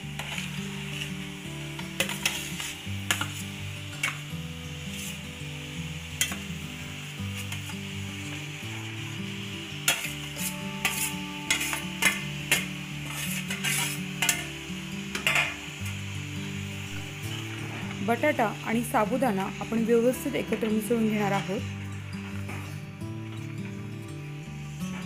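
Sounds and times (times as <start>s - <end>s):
soft background music: 0.0s - 25.0s
metal spoon scraping a pot: 0.1s - 1.1s, 2.0s - 4.2s, 9.8s - 14.5s.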